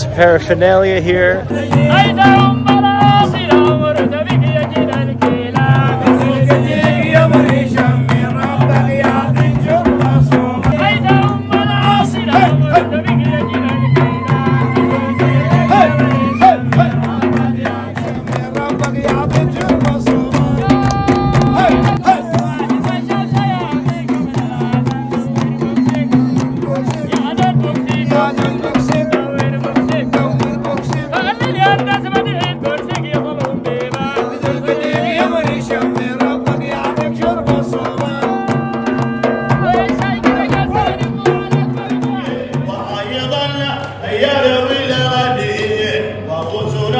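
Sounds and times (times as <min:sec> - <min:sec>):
men singing and chanting: 0:00.0 - 0:46.9
frame drum beat: 0:01.4 - 0:43.1.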